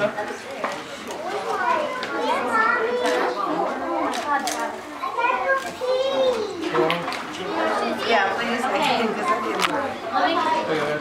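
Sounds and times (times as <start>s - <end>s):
people talking and exclaiming: 0.0s - 11.0s.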